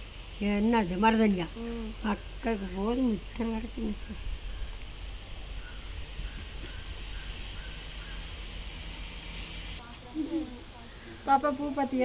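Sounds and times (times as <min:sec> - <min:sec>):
outdoor background hiss: 0:00.0 - 0:12.0
brighter rush of noise: 0:01.4 - 0:09.8.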